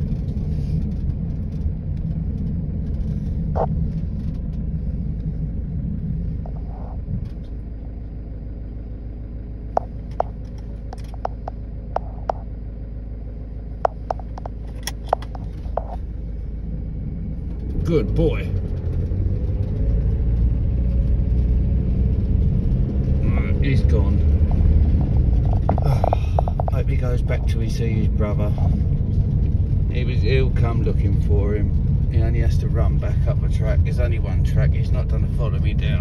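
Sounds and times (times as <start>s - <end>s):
car rumbling on dirt track: 0.0s - 36.0s.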